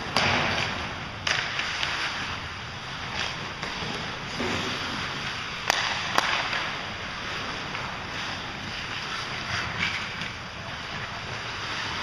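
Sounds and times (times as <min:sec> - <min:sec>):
hockey stick hitting puck: 0:00.0 - 0:12.0.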